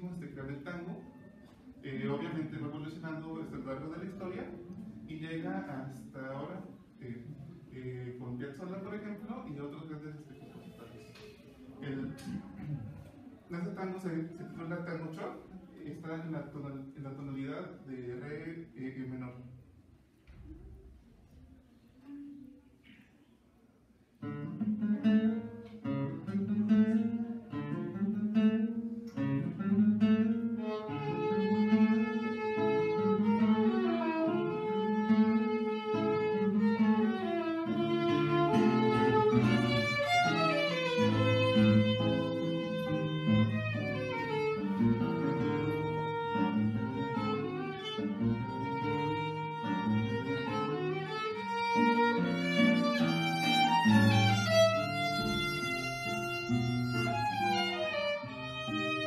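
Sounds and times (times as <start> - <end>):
classical guitar chords: 0.0 - 9.8, 24.1 - 59.0
violin melody: 30.4 - 59.0.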